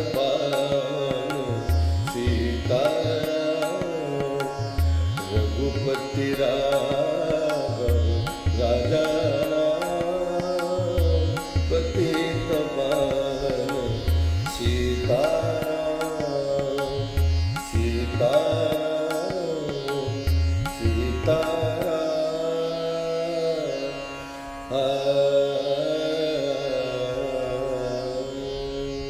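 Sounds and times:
gliding devotional melody: 0.0s - 28.9s.

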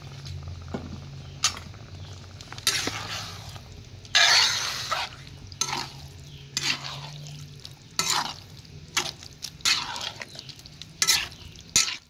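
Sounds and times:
wooden spoon stirring stew in pot: 0.2s - 12.0s.

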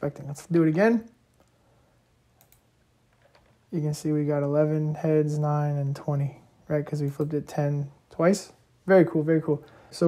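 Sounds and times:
computer mouse clicks: 2.4s - 3.6s.

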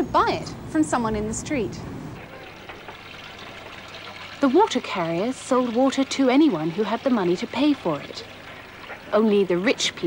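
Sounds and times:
water pouring: 2.2s - 10.0s.

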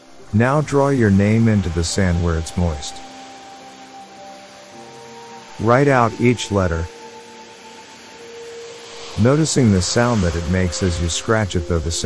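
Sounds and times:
faint hiss: 0.0s - 12.0s
meditation music with held tones: 0.0s - 12.0s.

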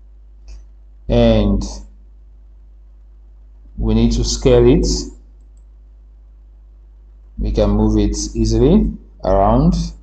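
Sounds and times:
computer mouse clicks: 5.4s - 5.8s.

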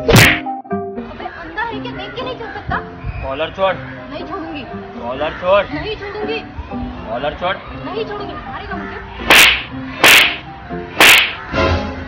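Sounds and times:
loud sharp slap: 0.0s - 0.5s, 9.2s - 10.4s, 11.0s - 11.4s
background music: 0.0s - 12.0s.

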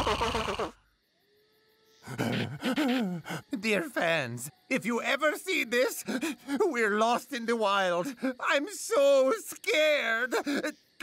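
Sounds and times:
faint thin steady tones: 0.8s - 11.0s.

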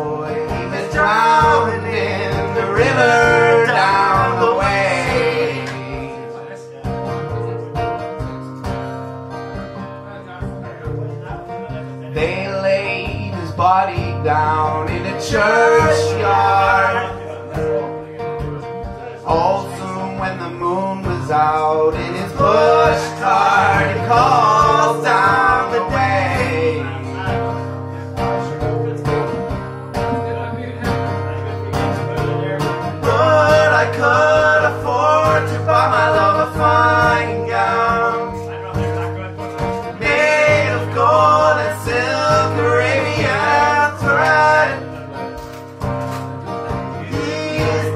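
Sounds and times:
man singing: 0.0s - 7.2s, 11.7s - 18.3s, 18.9s - 31.0s, 31.7s - 45.4s, 46.5s - 47.9s
acoustic guitar strumming: 0.0s - 47.9s.

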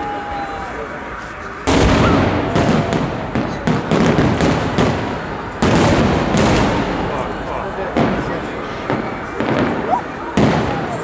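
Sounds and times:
fireworks popping and crackling: 1.2s - 11.0s
firework booms: 1.6s - 11.0s.

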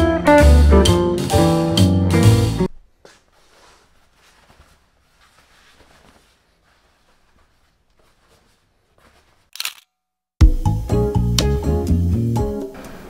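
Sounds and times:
curtain rustling: 2.9s - 9.6s.

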